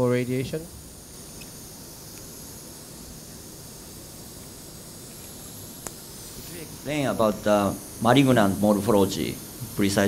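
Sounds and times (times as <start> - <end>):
faint room noise hiss: 0.0 - 10.0.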